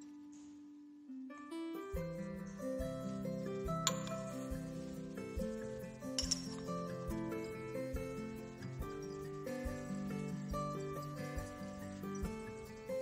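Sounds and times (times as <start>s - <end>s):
background music with steady beat: 0.0s - 13.0s
glass clink: 3.8s - 4.8s, 5.4s - 10.0s.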